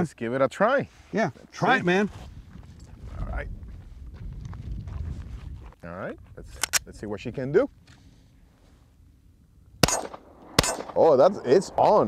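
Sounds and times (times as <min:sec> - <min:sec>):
pistol shot: 0:09.8 - 0:11.0.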